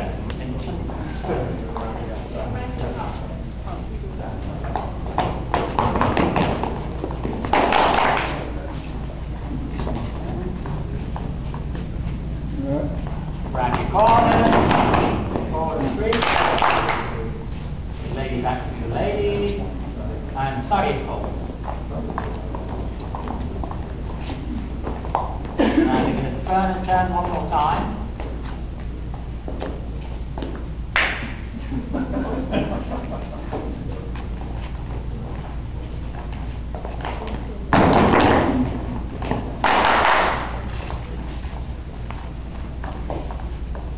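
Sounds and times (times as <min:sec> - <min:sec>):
steady low hum: 0:00.0 - 0:43.9
dancers' feet on floor: 0:04.5 - 0:08.2, 0:21.1 - 0:25.7, 0:33.5 - 0:43.9.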